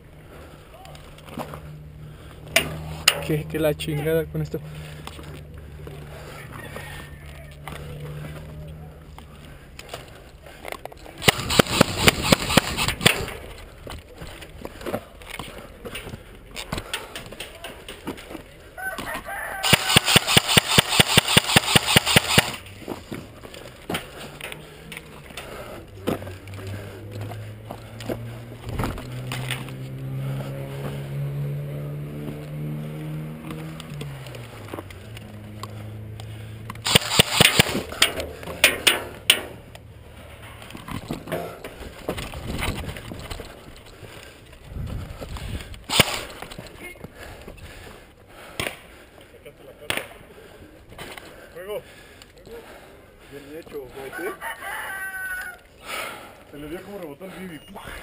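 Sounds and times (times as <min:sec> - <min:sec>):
airsoft rifle automatic bursts: 0:11.2 - 0:13.3, 0:19.6 - 0:22.6, 0:36.8 - 0:38.0, 0:45.9 - 0:46.3.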